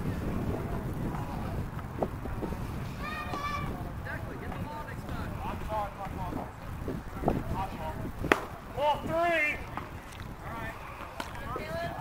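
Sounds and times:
baseball popping into leather mitt: 8.2 - 8.5.

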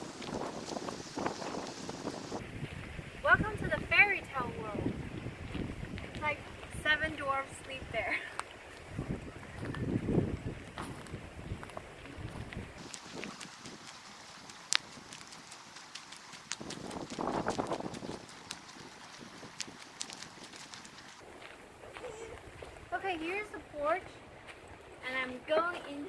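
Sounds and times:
footsteps on dry leaves: 0.0 - 3.1, 8.4 - 26.0.

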